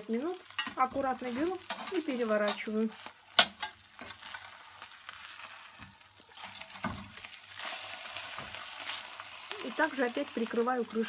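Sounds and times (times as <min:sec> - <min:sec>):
fish sizzling in a frying pan: 0:00.0 - 0:11.0.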